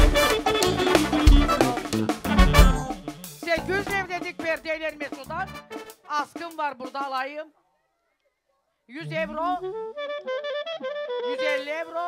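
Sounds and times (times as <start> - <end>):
clarinet melody: 0.0 - 4.0, 9.0 - 12.0.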